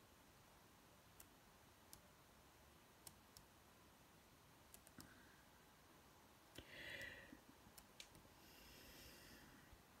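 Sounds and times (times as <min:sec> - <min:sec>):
faint computer clicks: 0:04.7 - 0:05.2, 0:06.5 - 0:08.3.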